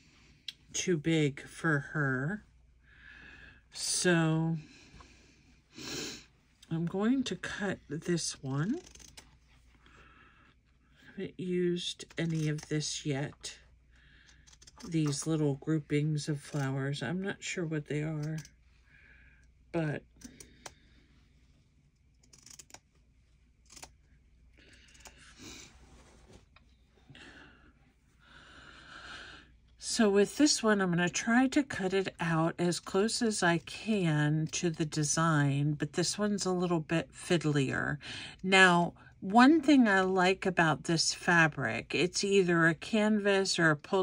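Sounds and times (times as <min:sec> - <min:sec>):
scissors cutting fabric: 0:08.6 - 0:09.4, 0:14.2 - 0:15.5, 0:22.2 - 0:22.9, 0:23.6 - 0:24.0
small clicks: 0:14.2 - 0:15.2, 0:21.9 - 0:23.0
stiff fabric rustling: 0:25.3 - 0:27.0.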